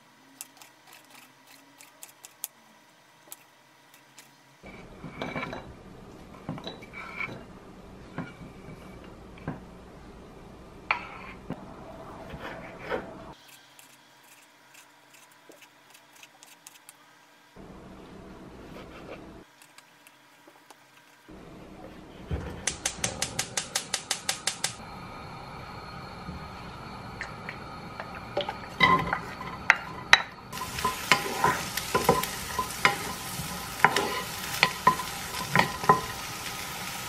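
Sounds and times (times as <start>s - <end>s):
gas flame hissing: 21.8s - 37.0s
gas igniter clicking: 22.7s - 24.8s.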